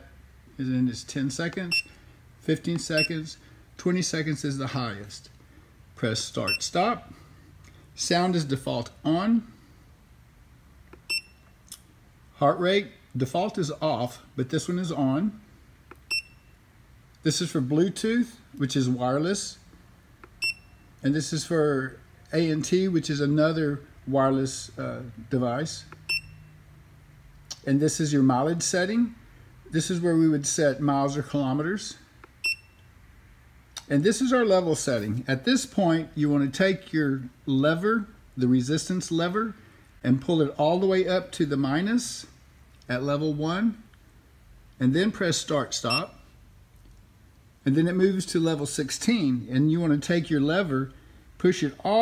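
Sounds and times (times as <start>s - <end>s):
short high beep: 3.0s - 3.2s.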